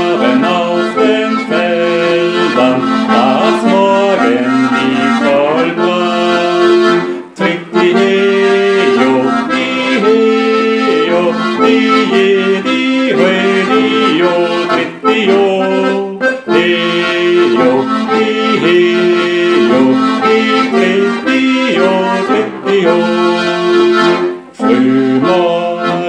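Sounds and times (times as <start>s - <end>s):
accordion playing folk tune: 0.0s - 26.0s
man singing: 0.0s - 26.0s.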